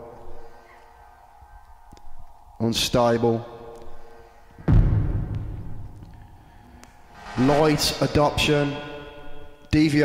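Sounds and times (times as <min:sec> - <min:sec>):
faint low rumble: 0:00.0 - 0:09.7
echoing spoken vocal sample: 0:07.2 - 0:10.0.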